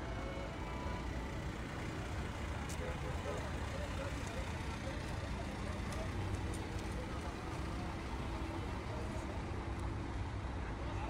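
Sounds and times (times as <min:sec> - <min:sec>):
van engine rumbling: 0:00.0 - 0:10.6
murmur of crowd voices: 0:00.0 - 0:11.0.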